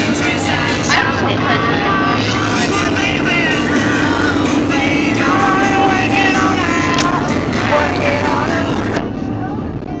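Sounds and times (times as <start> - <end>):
car cabin drone: 0.0 - 10.0
pitched voice: 0.8 - 3.2.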